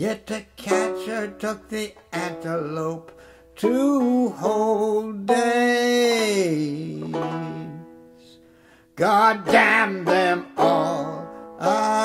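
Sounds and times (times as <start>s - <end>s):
banjo plucked: 0.0s - 12.0s.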